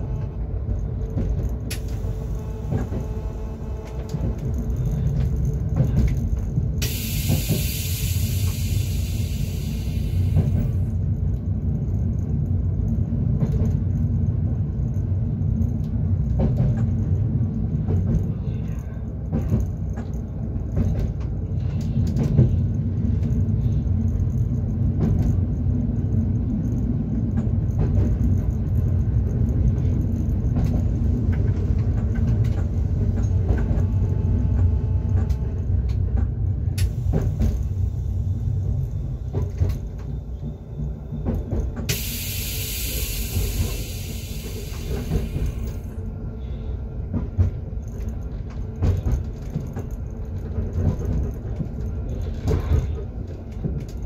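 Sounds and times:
train running low rumble: 0.0s - 54.0s.

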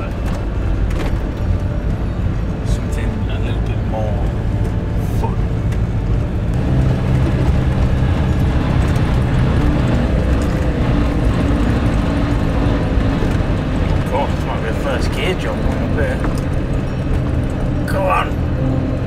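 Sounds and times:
diesel engine running: 0.0s - 19.0s
tyres rumbling on rough road: 0.0s - 19.0s.

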